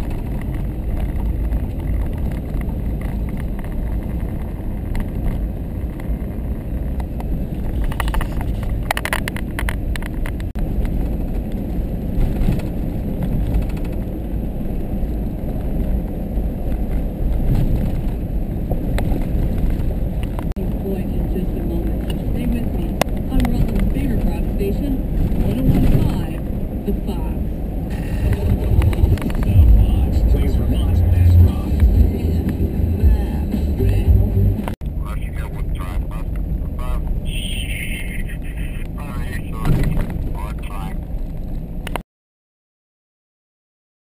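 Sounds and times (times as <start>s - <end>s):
vehicle road rumble on gravel: 0.0s - 42.0s.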